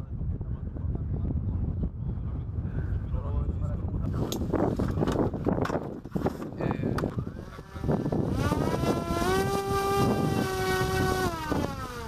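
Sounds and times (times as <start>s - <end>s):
drone motor buzzing whine: 5.5s - 12.0s.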